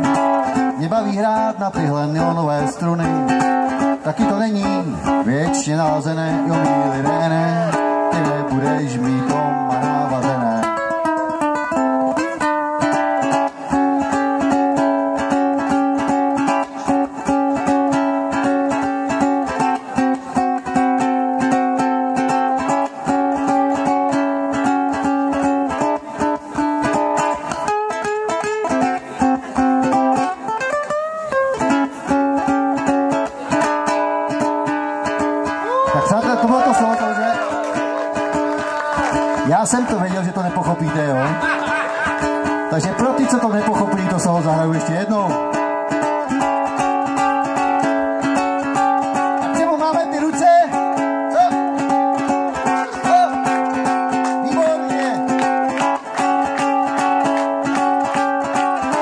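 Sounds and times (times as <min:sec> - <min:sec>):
jazz ukulele strumming: 0:00.0 - 0:59.0
person's voice: 0:35.9 - 0:37.6.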